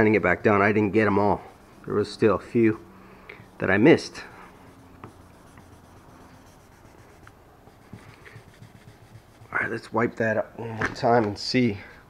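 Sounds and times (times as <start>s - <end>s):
sandpaper rubbing: 3.5s - 9.7s.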